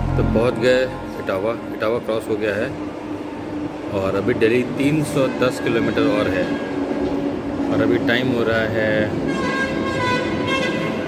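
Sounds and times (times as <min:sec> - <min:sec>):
high-pitched tone: 0:00.0 - 0:02.3
continuous background noise: 0:00.0 - 0:11.0.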